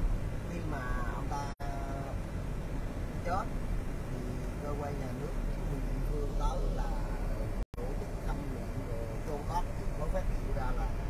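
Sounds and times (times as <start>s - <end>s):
car engine and tyres rumbling: 0.0s - 11.0s.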